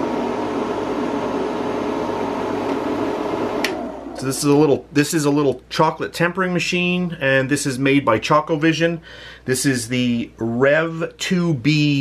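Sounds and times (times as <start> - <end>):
machine motor humming: 0.0 - 4.6.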